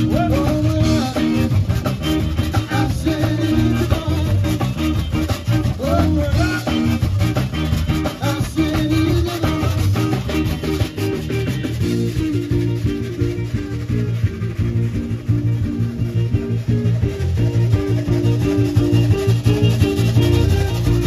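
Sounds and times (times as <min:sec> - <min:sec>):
live band playing dance music: 0:00.0 - 0:21.0.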